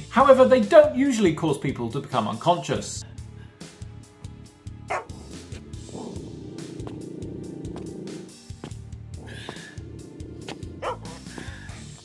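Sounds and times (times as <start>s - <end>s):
background music with low notes: 0.0s - 12.0s
dog barking: 4.9s - 5.2s, 10.8s - 11.2s.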